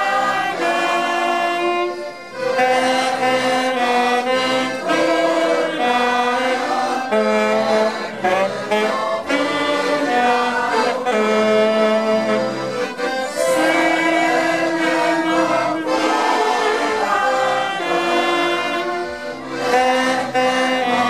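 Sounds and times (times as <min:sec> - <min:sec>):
accordions playing: 0:00.0 - 0:21.0
choir singing: 0:00.0 - 0:21.0.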